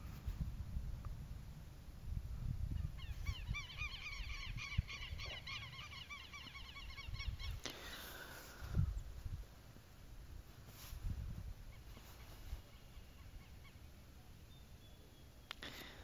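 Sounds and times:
faint bird calls: 0:02.8 - 0:09.1, 0:11.7 - 0:16.0.

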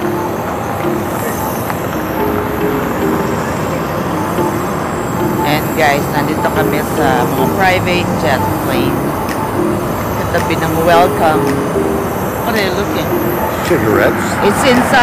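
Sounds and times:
roadside traffic: 0:00.0 - 0:15.0.

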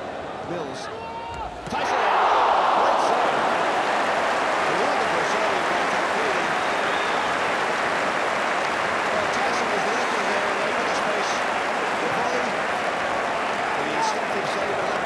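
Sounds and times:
stadium crowd shouting and cheering: 0:00.0 - 0:15.0.

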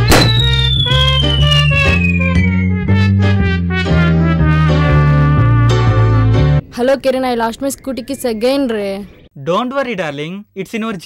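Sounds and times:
bass notes: 0:00.0 - 0:06.6
high whistle-like gliding tone: 0:00.3 - 0:02.8.

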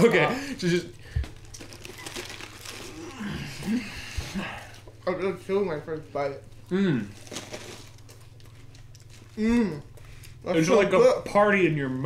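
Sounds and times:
teeth crunching lettuce: 0:01.2 - 0:05.0, 0:06.0 - 0:10.4
low vocal grunt: 0:03.0 - 0:04.7, 0:06.7 - 0:07.1, 0:09.4 - 0:09.9.

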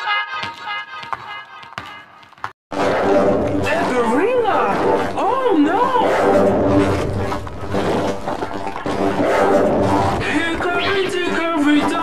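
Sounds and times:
heavily distorted music: 0:02.8 - 0:12.0.

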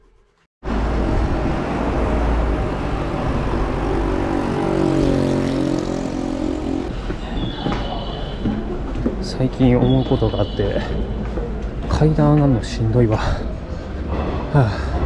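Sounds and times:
loud vehicle rumble: 0:00.6 - 0:07.2.

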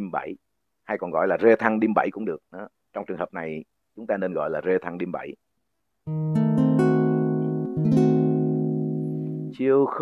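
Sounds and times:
acoustic guitar chord fingerpicked: 0:06.1 - 0:09.6.

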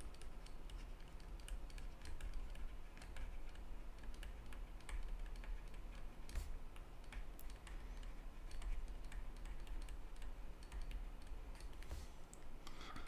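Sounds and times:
stylus tapping on tablet screen: 0:00.0 - 0:12.1
low steady hum: 0:00.0 - 0:13.0.

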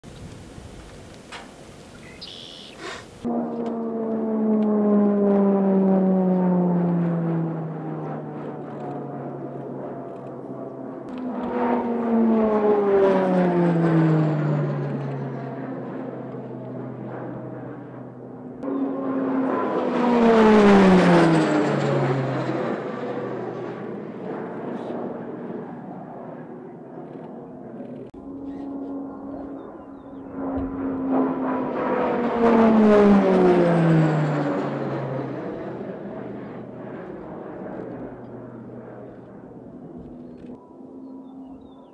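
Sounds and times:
turboprop aircraft passing by: 0:00.1 - 0:41.9.

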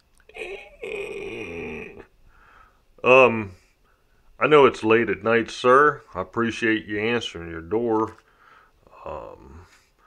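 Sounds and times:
person grunting: 0:00.3 - 0:02.1.

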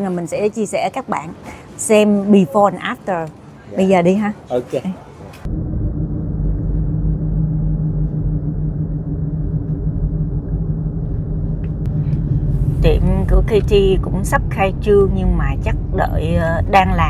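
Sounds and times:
road and engine rumble: 0:05.0 - 0:17.0
faint hum: 0:05.4 - 0:17.0.

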